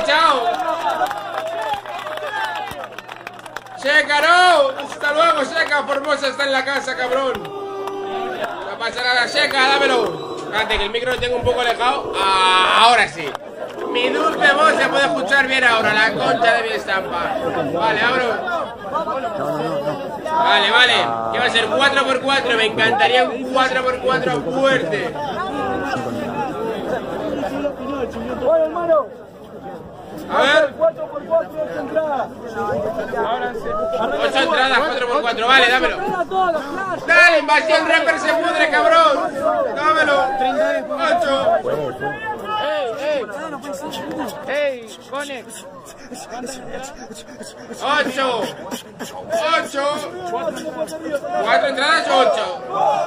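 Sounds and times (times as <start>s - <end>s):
crowd noise: 0.0s - 53.0s
men talking: 0.0s - 53.0s
loud man's voice: 3.8s - 18.6s, 20.3s - 26.4s, 31.9s - 42.2s, 42.9s - 52.7s.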